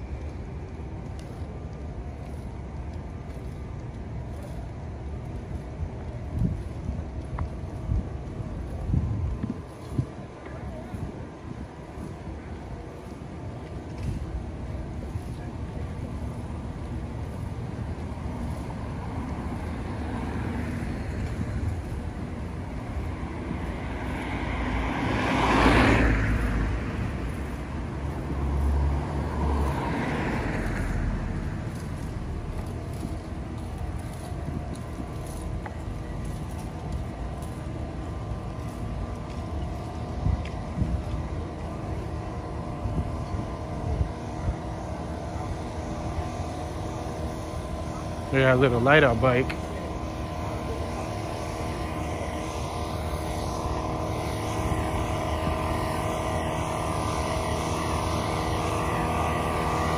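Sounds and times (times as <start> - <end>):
low street noise: 0.0 - 59.9
cars driving past: 11.9 - 59.9.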